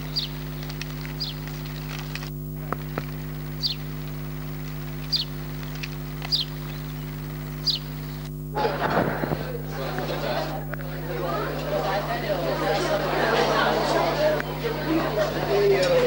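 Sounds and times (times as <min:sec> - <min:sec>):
bird chirping: 0:00.0 - 0:02.2, 0:03.5 - 0:04.0, 0:04.8 - 0:08.3
low electrical hum: 0:00.0 - 0:16.0.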